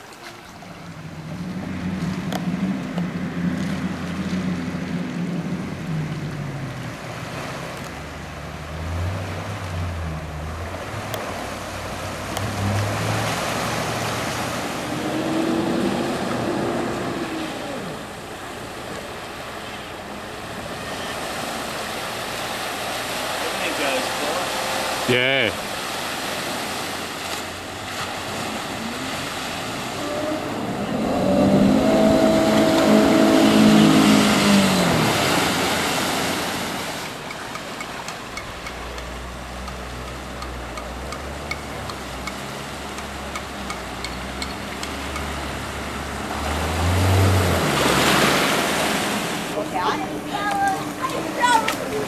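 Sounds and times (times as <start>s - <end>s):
water rushing and splashing: 0.0s - 52.0s
vehicle engine running and revving: 0.9s - 19.0s, 22.0s - 25.5s, 27.6s - 37.0s, 38.9s - 52.0s.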